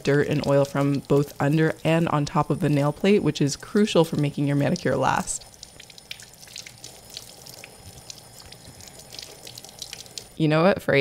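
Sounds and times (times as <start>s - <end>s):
tap water running: 0.0s - 10.4s
water splashes and drips: 0.0s - 10.4s.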